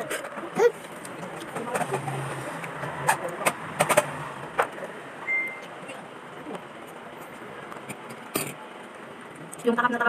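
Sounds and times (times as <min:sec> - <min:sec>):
short high beep: 0:05.2 - 0:05.7.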